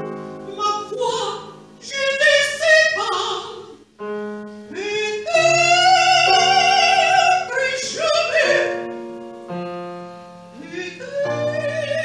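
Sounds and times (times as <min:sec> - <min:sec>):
piano: 0:00.0 - 0:12.0
woman singing operatically: 0:00.5 - 0:03.8, 0:04.7 - 0:08.8, 0:10.6 - 0:12.0.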